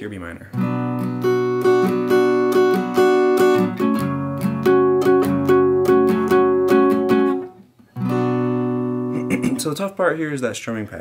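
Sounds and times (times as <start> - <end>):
acoustic guitar strumming: 0.5 - 9.8.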